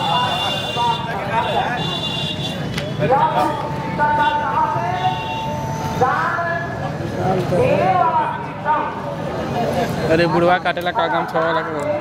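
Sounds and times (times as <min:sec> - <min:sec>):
street background noise: 0:00.0 - 0:12.0
men talking: 0:09.6 - 0:11.9.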